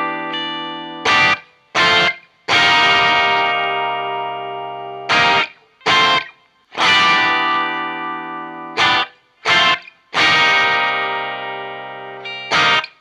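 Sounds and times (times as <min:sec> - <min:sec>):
electric guitar chords: 0:00.0 - 0:13.0.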